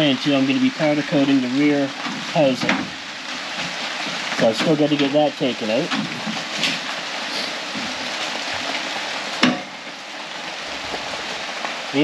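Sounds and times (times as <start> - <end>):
steady rain hiss: 0.0 - 12.0.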